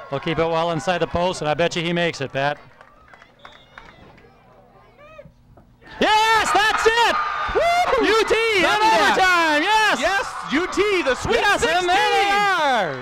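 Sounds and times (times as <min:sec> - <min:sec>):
people yelling and cheering: 0:05.9 - 0:13.0.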